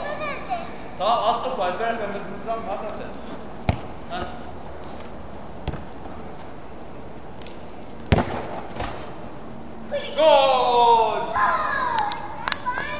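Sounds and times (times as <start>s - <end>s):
football kicked with thuds: 3.6s - 4.4s, 5.6s - 5.9s, 8.1s - 9.0s.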